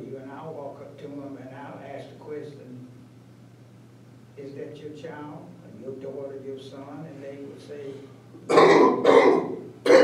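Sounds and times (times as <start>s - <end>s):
man coughing harshly: 8.5s - 10.0s.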